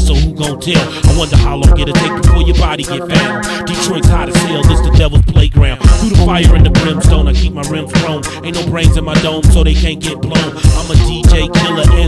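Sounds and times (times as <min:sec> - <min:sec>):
booming bass beat: 0:00.0 - 0:12.0
male rapper rapping: 0:00.0 - 0:12.0.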